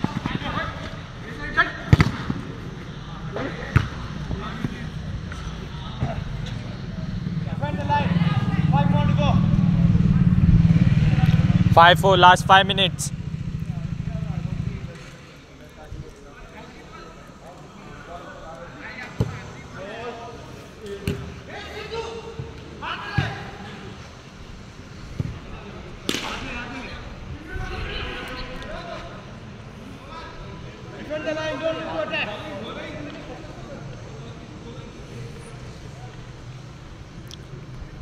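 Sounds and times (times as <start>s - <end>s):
distant players shouting: 0.0s - 15.2s
ball being kicked: 3.7s - 4.0s.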